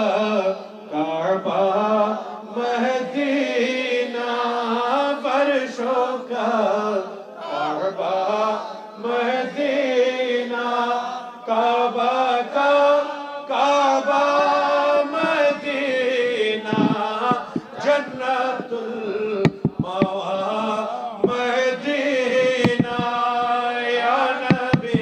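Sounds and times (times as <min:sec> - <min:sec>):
men chanting melodic phrases: 0:10.6 - 0:25.0.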